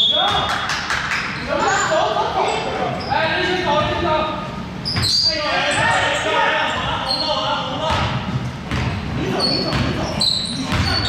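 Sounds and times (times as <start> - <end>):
players calling out: 4.8 - 8.2.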